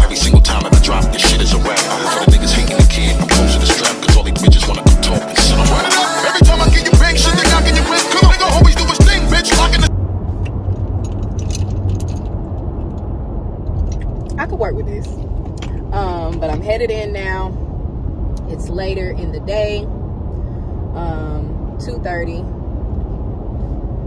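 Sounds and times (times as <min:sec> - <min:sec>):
car cabin road rumble: 0:06.4 - 0:24.0
woman's voice: 0:14.3 - 0:15.2, 0:15.8 - 0:17.6, 0:18.4 - 0:19.9, 0:20.9 - 0:22.5.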